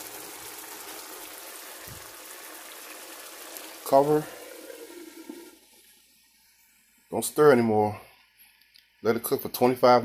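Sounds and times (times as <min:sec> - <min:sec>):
simmering liquid hissing: 0:00.0 - 0:07.0.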